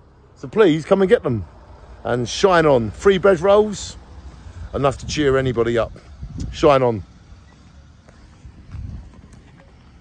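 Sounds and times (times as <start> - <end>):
wind rumble on microphone: 4.3 - 7.1, 8.1 - 10.0.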